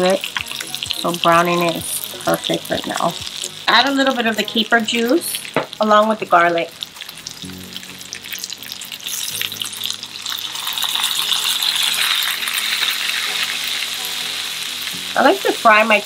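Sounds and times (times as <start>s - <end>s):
fish sizzling in a pan: 0.0s - 16.0s.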